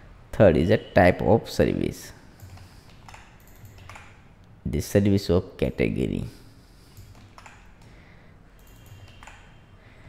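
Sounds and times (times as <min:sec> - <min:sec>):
keyboard keystrokes: 0:02.4 - 0:04.2, 0:07.0 - 0:07.9, 0:08.6 - 0:09.6.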